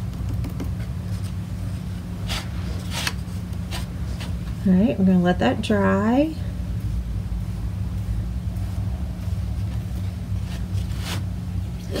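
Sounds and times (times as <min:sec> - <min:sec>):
low hum and rumble: 0:00.0 - 0:12.0.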